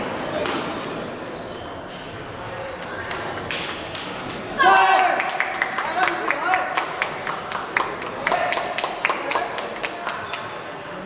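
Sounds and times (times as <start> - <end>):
table tennis balls clicking: 0.4 - 4.5.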